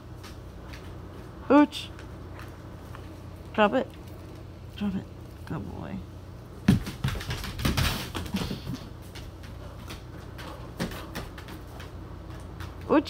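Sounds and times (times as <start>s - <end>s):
dog claws clicking on hardwood floor: 6.6s - 12.9s.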